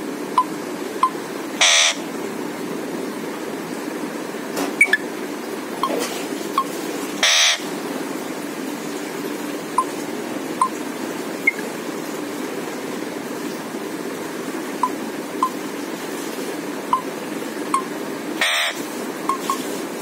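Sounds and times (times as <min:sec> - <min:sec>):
parakeet squawk: 0:01.6 - 0:02.0, 0:07.2 - 0:07.7, 0:18.4 - 0:18.8.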